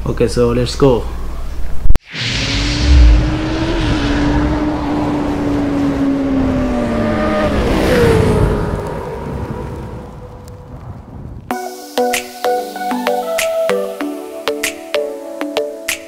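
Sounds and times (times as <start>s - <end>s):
loud low hit: 2.0s - 5.5s
motorcycle engine passing by: 2.2s - 10.0s.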